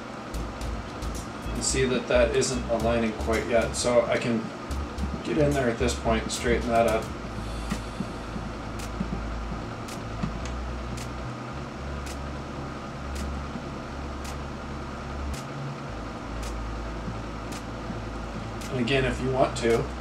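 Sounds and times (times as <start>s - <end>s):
low room hum and hiss: 0.0s - 20.0s.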